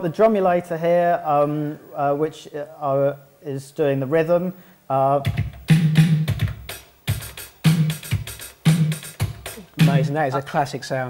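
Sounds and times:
drum machine beat: 5.2 - 10.6.

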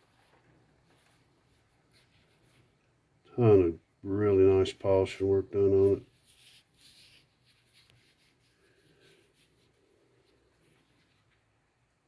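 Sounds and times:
hand rubbing smooth stone: 0.0 - 2.8, 4.8 - 11.7.

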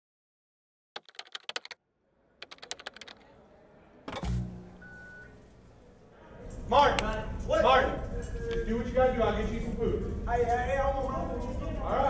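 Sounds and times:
sharp typing clicks: 1.0 - 1.8, 2.4 - 3.3
high beep: 4.2 - 5.4.

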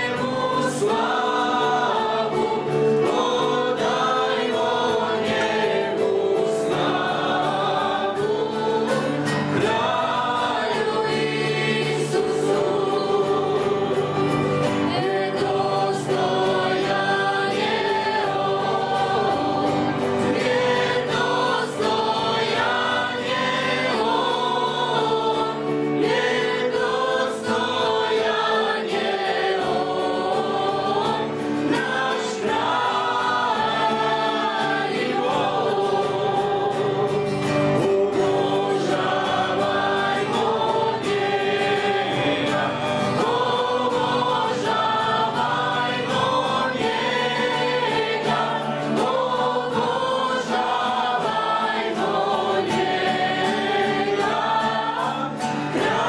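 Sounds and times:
worship band singing a hymn: 0.0 - 56.0.

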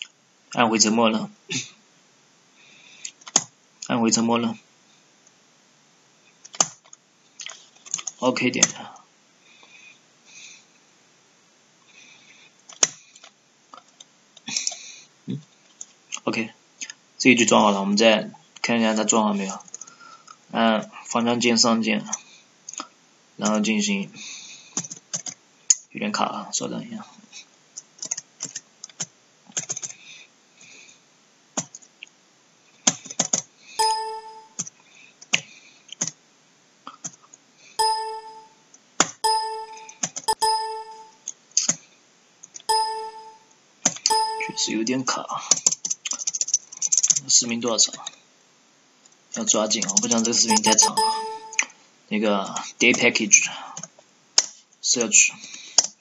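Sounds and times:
computer keyboard keystrokes: 3.2 - 3.5, 6.4 - 7.0, 7.8 - 8.8, 24.8 - 25.4, 28.0 - 30.0, 31.6 - 31.9, 32.9 - 36.2, 39.0 - 41.0, 43.9 - 44.6, 45.5 - 47.2, 55.8 - 56.0.

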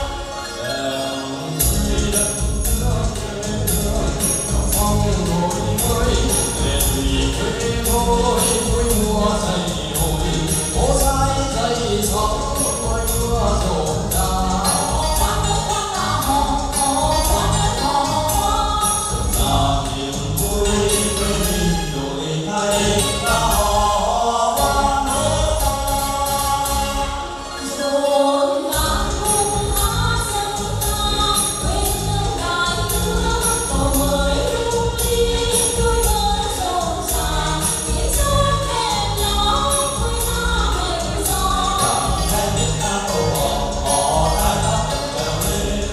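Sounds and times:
backing music with percussion beat: 0.0 - 27.7, 28.7 - 45.9
group singing in chorus: 0.0 - 45.9.

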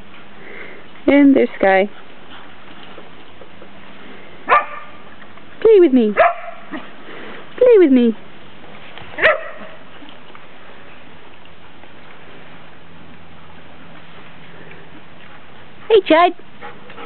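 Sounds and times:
low background hiss: 0.0 - 17.0
dog barking: 4.5 - 5.0, 6.2 - 6.8, 9.2 - 9.8.

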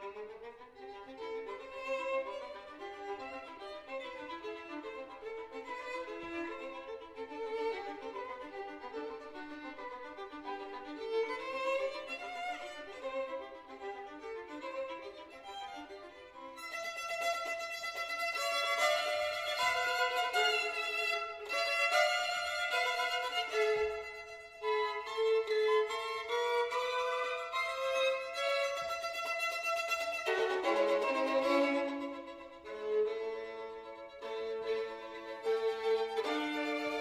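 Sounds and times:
two violins playing: 0.0 - 37.0.

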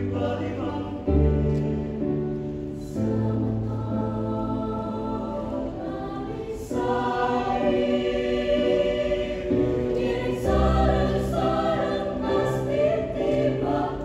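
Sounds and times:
mixed choir singing chords: 0.0 - 14.0.

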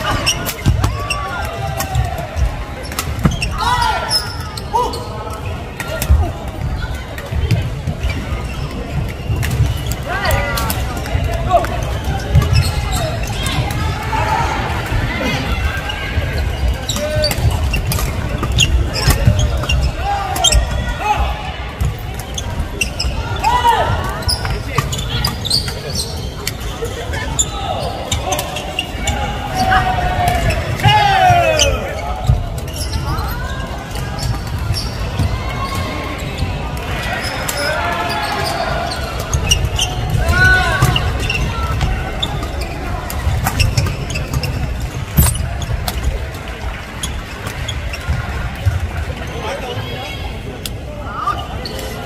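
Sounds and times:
shoes squeaking on floor: 0.0 - 13.9, 15.1 - 21.2, 21.8 - 46.3
players' voices and calls: 0.0 - 52.0.

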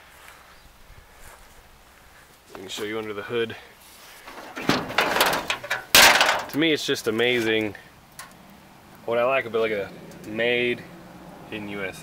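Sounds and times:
metal panel rattling and scraping: 4.2 - 6.7
loud metal clank: 4.3 - 6.6.

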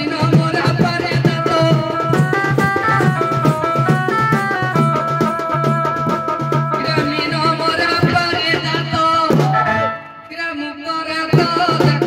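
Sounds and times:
drum strokes: 0.0 - 10.3
person singing into a microphone: 0.0 - 12.0.

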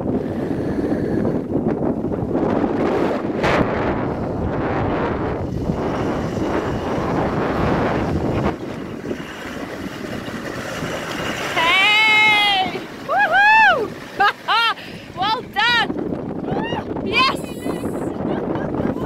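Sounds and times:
diesel engine at low revs: 0.0 - 16.4
wind buffeting microphone: 0.0 - 19.0.

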